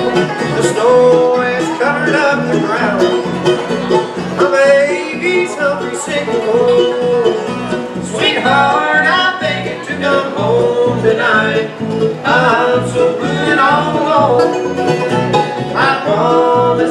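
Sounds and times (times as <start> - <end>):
bluegrass band playing: 0.0 - 16.9.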